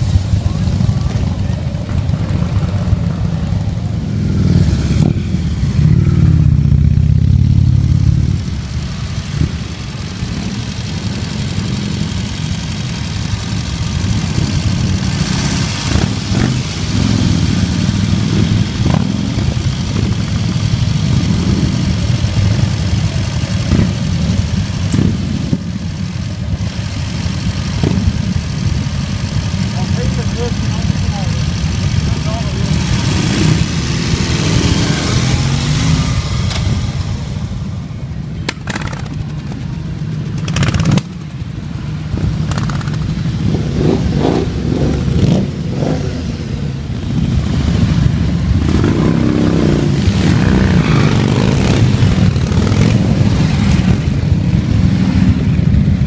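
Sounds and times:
motorcycle engines rumbling: 0:00.0 - 0:56.0.

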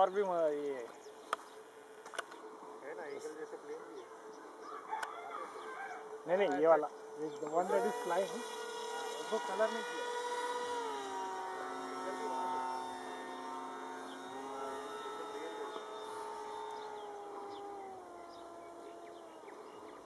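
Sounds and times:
electric motor whine: 0:00.0 - 0:20.0.

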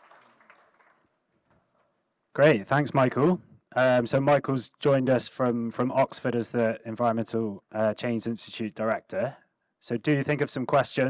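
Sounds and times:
faint scattered applause: 0:00.0 - 0:01.4.

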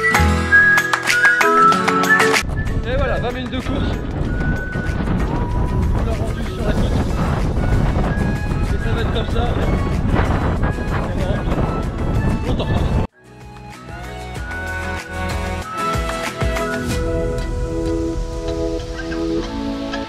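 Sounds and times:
wind buffeting microphone: 0:02.4 - 0:13.1
man talking: 0:02.8 - 0:04.1, 0:06.0 - 0:07.4, 0:08.7 - 0:09.9, 0:10.9 - 0:11.7.

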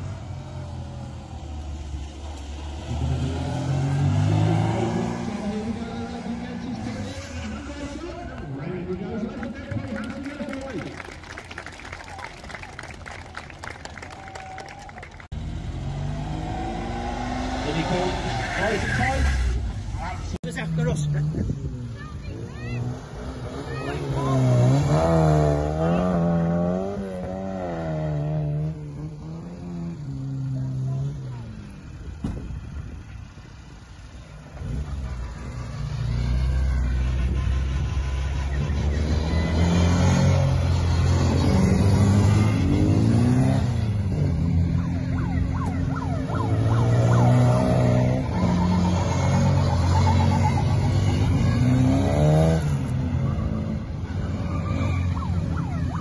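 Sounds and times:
car engines revving past: 0:00.0 - 0:56.0.

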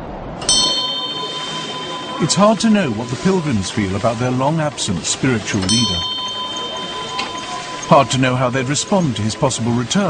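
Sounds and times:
small metal bell ringing: 0:00.4 - 0:03.5, 0:05.6 - 0:08.2.

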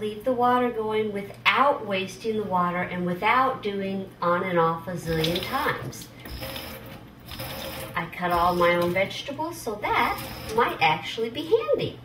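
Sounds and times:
faucet water running into sink: 0:05.0 - 0:09.1, 0:09.9 - 0:10.8.

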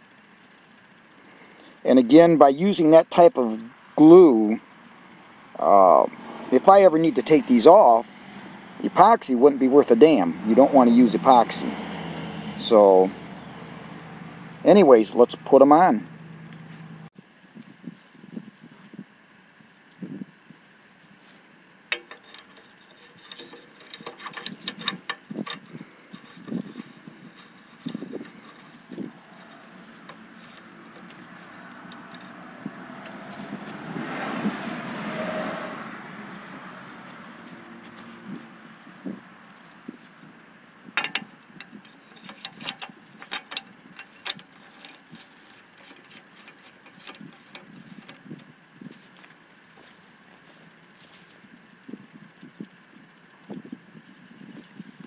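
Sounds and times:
clicks and knocks of metal parts: 0:21.9 - 0:32.4, 0:41.0 - 0:49.9.

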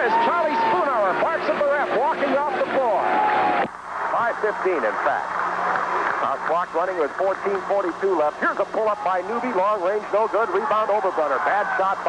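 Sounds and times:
man commentating excitedly: 0:00.0 - 0:03.1, 0:06.2 - 0:12.0
crowd noise: 0:00.0 - 0:12.0.

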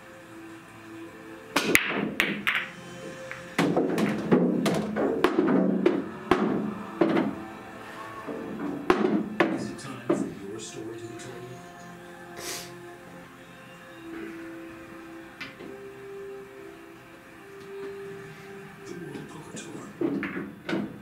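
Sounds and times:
background music: 0:00.0 - 0:21.0
billiard balls clacking: 0:01.6 - 0:07.4, 0:08.2 - 0:10.4, 0:19.1 - 0:21.0
cue ball crack: 0:01.6 - 0:07.4, 0:08.3 - 0:10.3, 0:20.0 - 0:21.0.

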